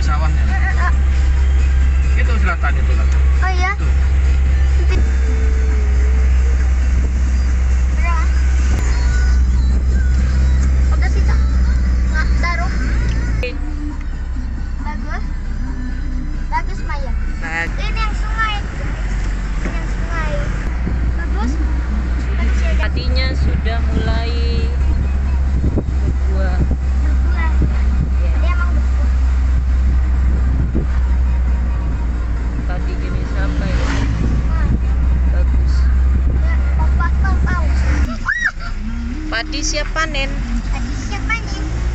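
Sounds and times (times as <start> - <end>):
music: 0.0 - 37.8
car rumble from inside cabin: 0.0 - 41.9
voices: 0.0 - 41.9.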